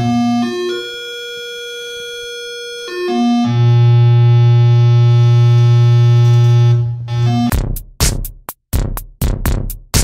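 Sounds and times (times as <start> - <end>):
low buzzy synthesized tone: 0.0 - 1.9, 3.1 - 7.5.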